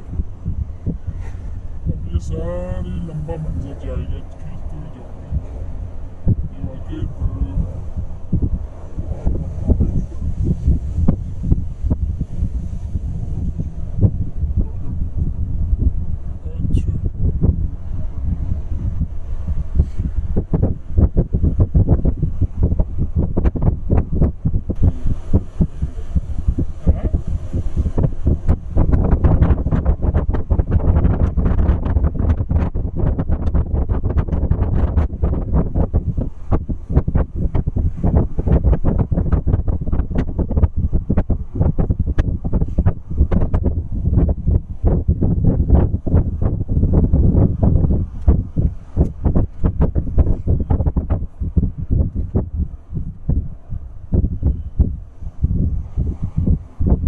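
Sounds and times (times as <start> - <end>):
road noise: 0.0 - 57.0
wind buffeting microphone: 0.0 - 57.0.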